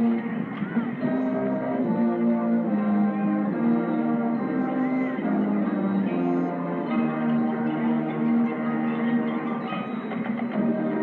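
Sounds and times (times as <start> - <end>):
brass band playing held chords: 0.0 - 11.0.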